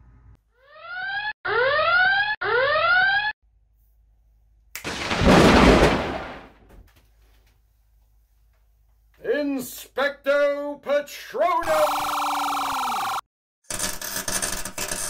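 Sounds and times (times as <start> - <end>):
explosion-like burst: 4.9 - 6.6.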